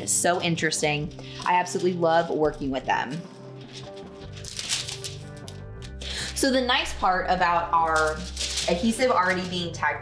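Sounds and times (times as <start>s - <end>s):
background music: 0.0s - 10.0s
plastic foil sheet crinkling: 3.4s - 6.7s, 7.7s - 9.8s.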